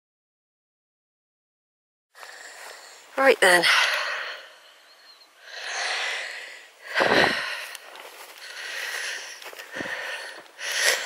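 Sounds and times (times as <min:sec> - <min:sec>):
person breathing close to microphone: 0:02.2 - 0:11.0.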